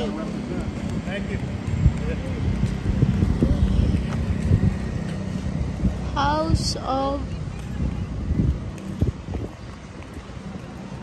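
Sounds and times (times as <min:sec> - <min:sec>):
faint voices: 0:00.0 - 0:11.0
street traffic: 0:00.0 - 0:11.0
wind buffeting microphone: 0:00.0 - 0:11.0.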